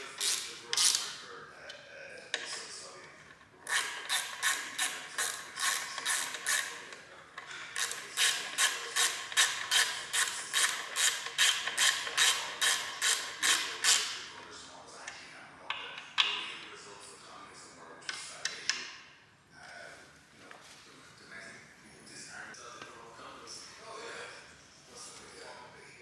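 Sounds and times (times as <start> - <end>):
ratchet wrench clicking: 0.2 - 1.2, 3.7 - 6.8, 7.8 - 14.2.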